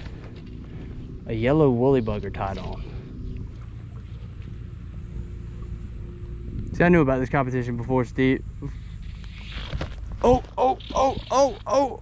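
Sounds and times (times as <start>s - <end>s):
wind rumble on microphone: 0.0s - 11.8s.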